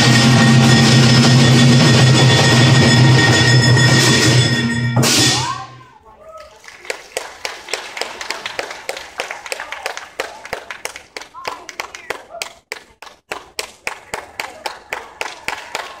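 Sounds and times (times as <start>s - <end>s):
audience clapping: 6.2s - 16.0s.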